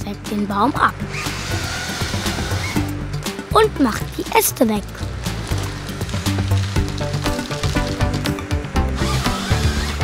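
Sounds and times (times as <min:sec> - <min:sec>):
chainsaw cutting tree trunk: 0:01.1 - 0:02.9, 0:08.8 - 0:10.0.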